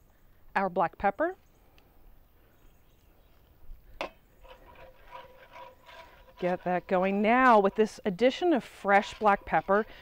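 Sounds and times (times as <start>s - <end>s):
whisk scraping cast iron skillet: 4.3s - 10.0s.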